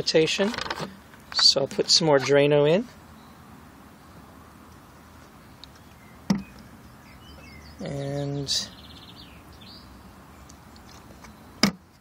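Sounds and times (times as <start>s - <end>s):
faint background noise: 0.0s - 12.0s
sharp knock: 6.3s - 6.5s.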